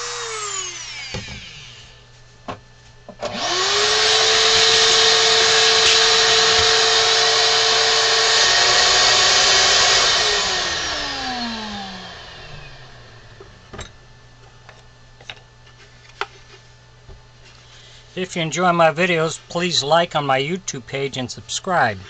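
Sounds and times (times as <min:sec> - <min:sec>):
electric motor tool whining: 0:00.0 - 0:02.0, 0:03.2 - 0:13.7.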